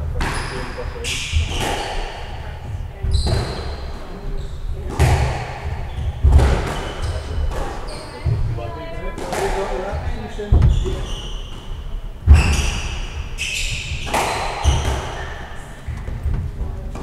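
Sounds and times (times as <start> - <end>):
shoes squeaking on wooden floor: 0.0 - 9.6, 10.2 - 17.0
squash ball hitting rackets and walls: 0.0 - 17.0.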